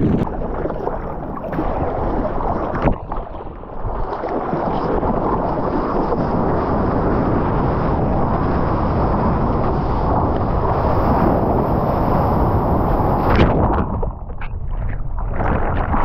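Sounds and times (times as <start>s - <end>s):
water rushing past surfboard: 0.0s - 16.0s
wind on camera: 0.0s - 16.0s.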